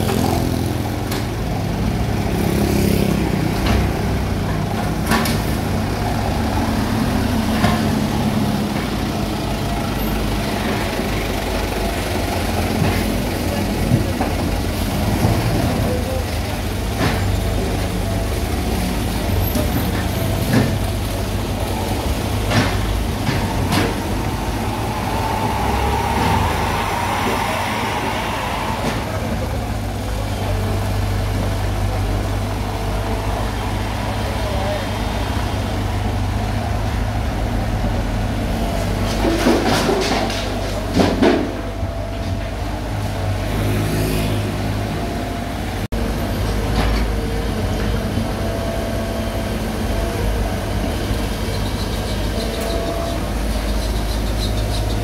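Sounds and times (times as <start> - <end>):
excavator diesel engine running: 0.0 - 55.0.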